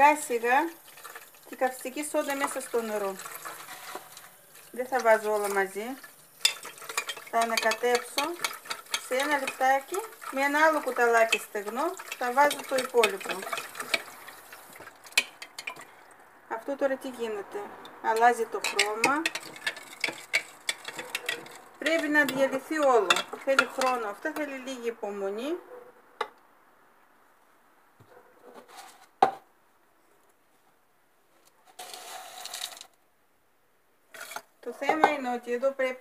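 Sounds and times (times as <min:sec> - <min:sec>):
spoon scraping glass: 0:03.3 - 0:04.3, 0:18.6 - 0:22.2
metal teaspoon clinking against glass jar: 0:18.6 - 0:22.1.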